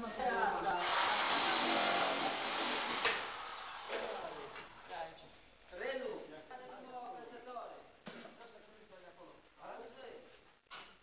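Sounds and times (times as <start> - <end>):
electric drill whining: 0.8 - 4.6.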